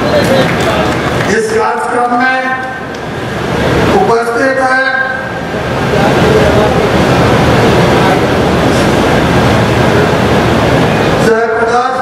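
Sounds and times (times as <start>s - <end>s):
audience applauding: 0.0s - 1.4s.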